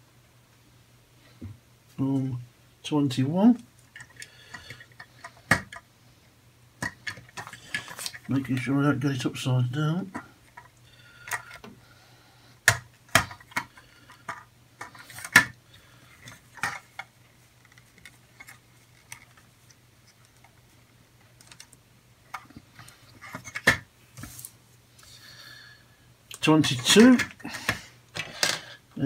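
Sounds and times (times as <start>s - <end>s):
plastic parts snapping together: 4.0s - 5.8s, 12.6s - 15.6s.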